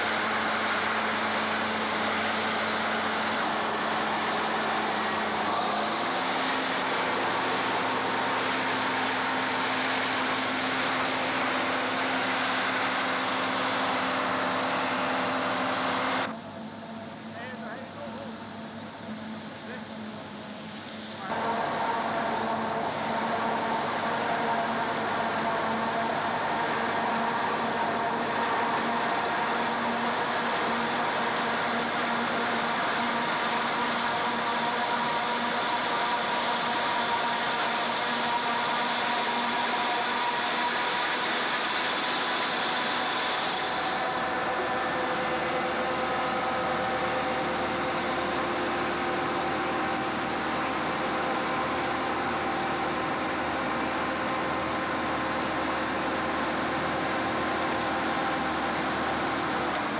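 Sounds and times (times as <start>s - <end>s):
forage harvester mechanical whine: 0.0s - 59.9s.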